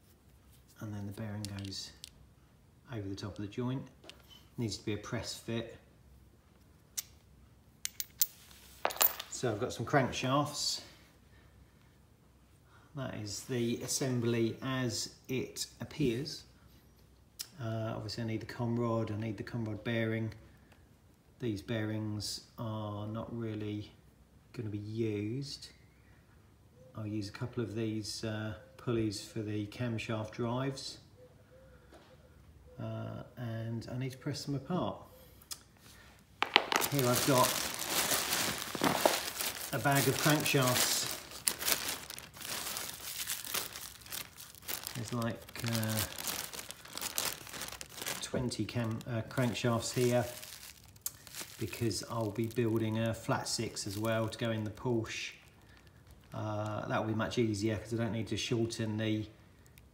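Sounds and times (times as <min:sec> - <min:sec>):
metal parts clicking together: 0:07.8 - 0:09.4
metal parts knocking on concrete: 0:07.9 - 0:09.4
plastic bag crinkling: 0:36.4 - 0:54.6.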